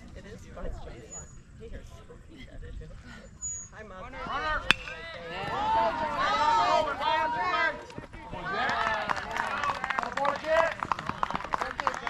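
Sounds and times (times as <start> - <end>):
metal bat hitting ball: 4.6 - 5.4
crowd shouting and cheering: 4.7 - 12.0.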